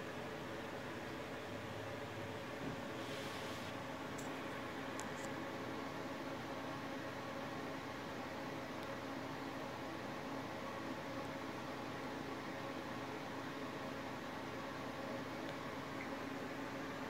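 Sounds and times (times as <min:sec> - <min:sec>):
faint hum: 0:00.0 - 0:17.0.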